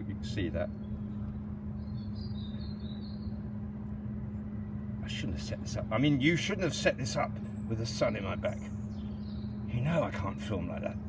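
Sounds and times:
faint bird twittering: 0.0 - 11.0
low background hum: 0.0 - 11.0.

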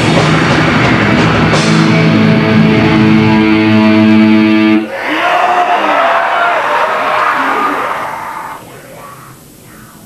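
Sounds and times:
amplifier and room noise: 0.0 - 10.0
distorted electric guitar chord: 0.4 - 4.8.

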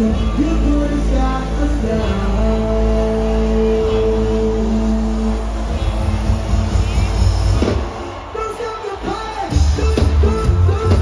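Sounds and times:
live concert music with booming bass: 0.0 - 11.0.

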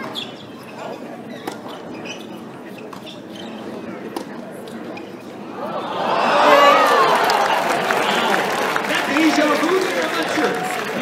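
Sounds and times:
murmur of spectators: 0.0 - 11.0.

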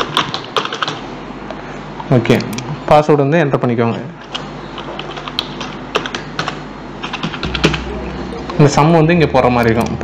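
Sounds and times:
computer keyboard typing: 0.0 - 1.0, 4.2 - 8.6.

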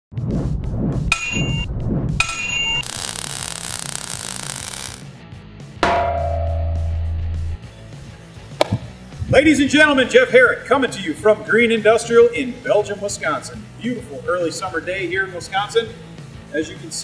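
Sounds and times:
metallic clangs: 5.8 - 7.4
deep hit with low hum: 5.8 - 7.6.

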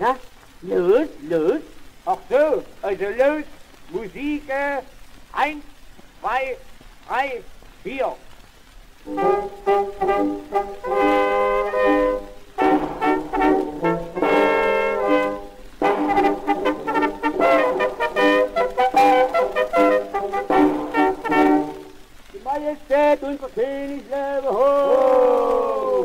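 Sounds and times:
brass band on an old record: 9.0 - 24.6.

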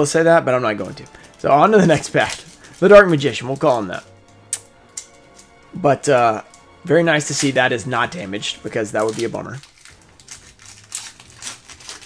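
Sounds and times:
foil wrapper crinkling: 0.7 - 4.1, 7.2 - 12.0
foil wrapper tearing open: 0.8 - 4.1, 8.8 - 12.0.

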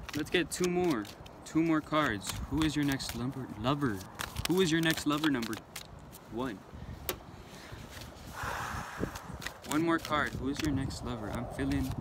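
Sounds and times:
handling rustle: 0.0 - 8.4, 9.2 - 12.0.

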